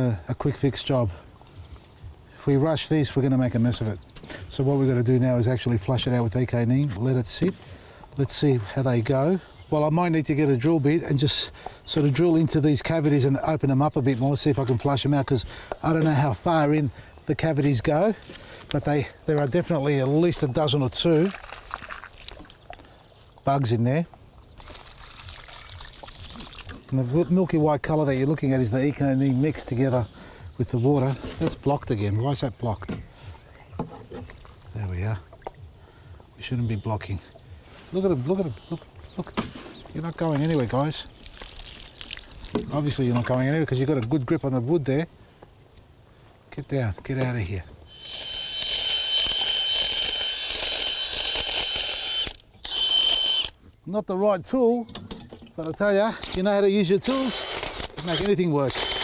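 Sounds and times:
water splashing and trickling: 18.9s - 30.0s, 30.9s - 45.0s
cordless drill boring into wood: 47.9s - 53.6s, 57.0s - 59.0s.

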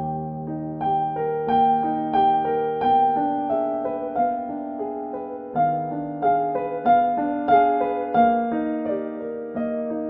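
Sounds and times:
solo piano broken chords: 0.0s - 10.0s.

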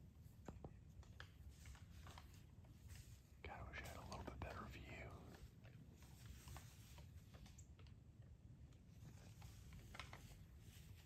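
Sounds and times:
faint whispering: 3.3s - 5.7s.

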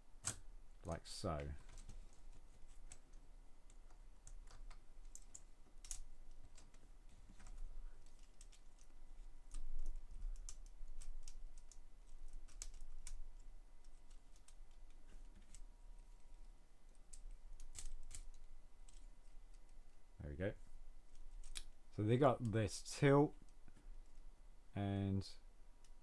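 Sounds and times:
plastic parts clicking and rattling: 1.5s - 15.7s.

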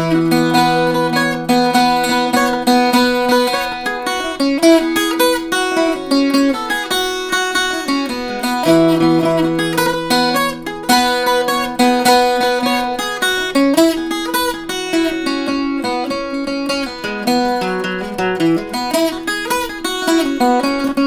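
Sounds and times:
bouzouki playing jig melody: 0.0s - 21.0s.

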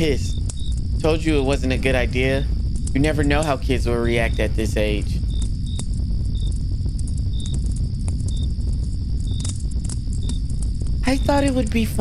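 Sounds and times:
continuous high trill: 0.0s - 12.0s
crickets chirping: 0.0s - 12.0s
steady low rumble: 0.0s - 12.0s.

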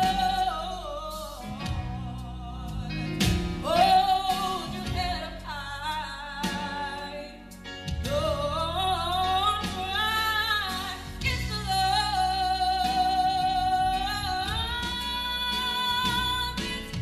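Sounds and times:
woman singing into microphone: 0.0s - 17.0s.

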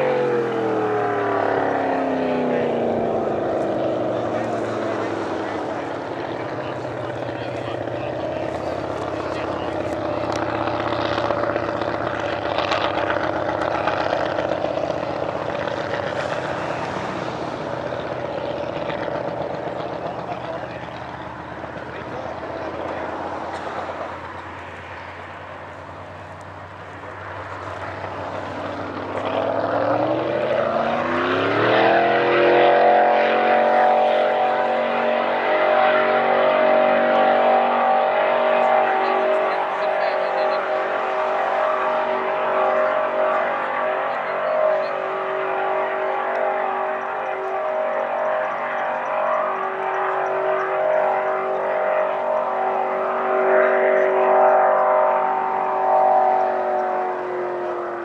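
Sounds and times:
race boat engine revving: 0.0s - 58.0s.

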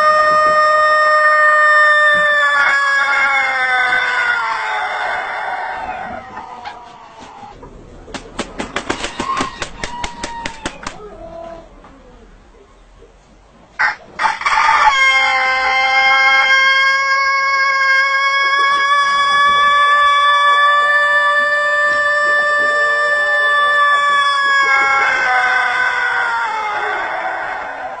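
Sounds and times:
rooster crowing: 0.0s - 6.8s, 8.7s - 11.8s, 13.8s - 28.0s.

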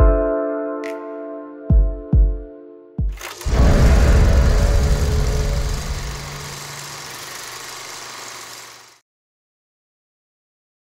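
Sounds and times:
short hit: 3.3s - 6.9s
loud rumbling noise: 3.3s - 9.0s.

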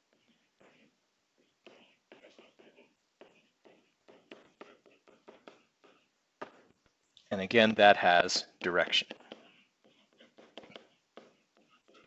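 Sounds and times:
stylus scratching on pen display: 0.1s - 6.8s, 8.8s - 12.0s.

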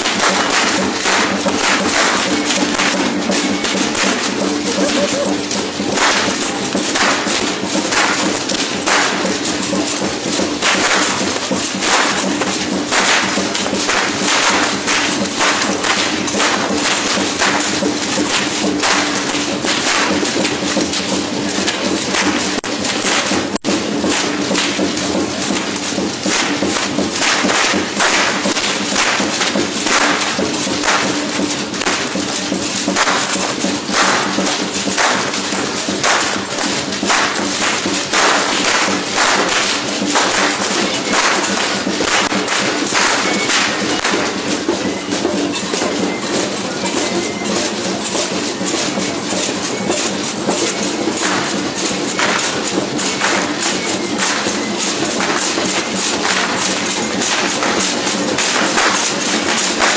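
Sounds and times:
drum beating steadily: 0.0s - 59.9s.

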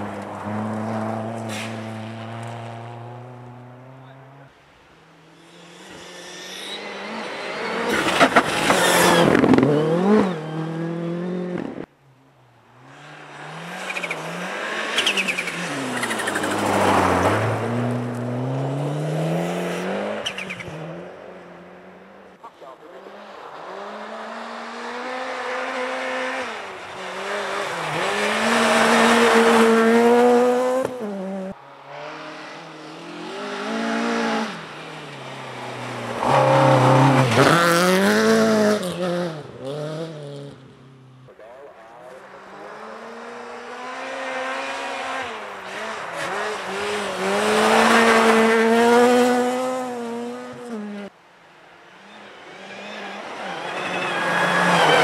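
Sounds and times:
rally car engines revving: 0.0s - 4.5s, 5.1s - 11.9s, 12.8s - 51.1s, 51.9s - 55.0s.

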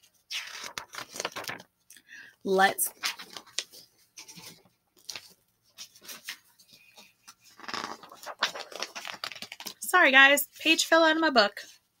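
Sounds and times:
paper rustling: 0.0s - 1.7s, 2.9s - 9.8s.

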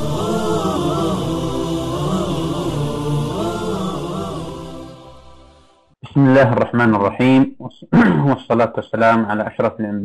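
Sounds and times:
low held drone: 0.0s - 5.8s
chanted voices in harmony: 0.0s - 6.0s.

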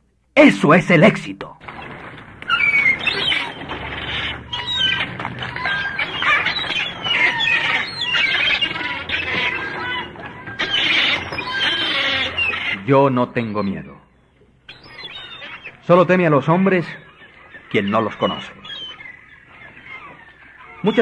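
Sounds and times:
birds chirping and singing: 1.6s - 21.0s.

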